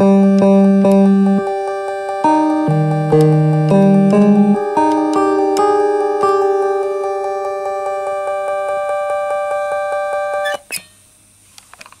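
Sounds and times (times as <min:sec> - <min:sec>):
pulsing synthesizer tones: 0:00.0 - 0:08.7.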